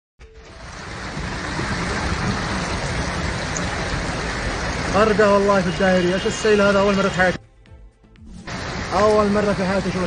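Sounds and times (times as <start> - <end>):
heavy rain: 0.4 - 7.1, 8.5 - 10.0
floodwater rushing: 0.5 - 7.4, 8.5 - 10.0.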